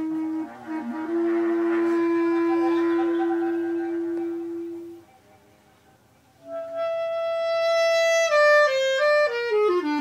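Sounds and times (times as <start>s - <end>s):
wind instrument long note: 0.0s - 5.1s, 6.4s - 10.0s.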